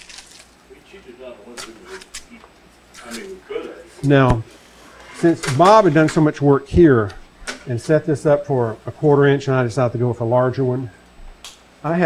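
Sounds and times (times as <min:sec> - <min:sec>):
tape peeling off wood: 0:00.0 - 0:00.6.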